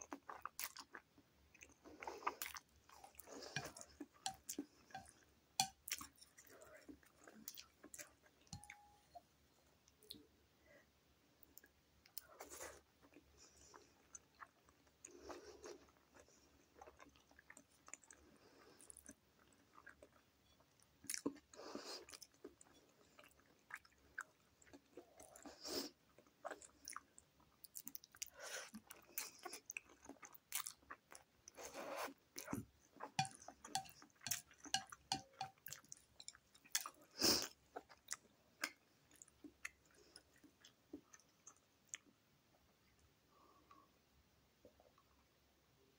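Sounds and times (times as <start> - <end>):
person chewing food: 0.0 - 9.2, 11.5 - 42.2.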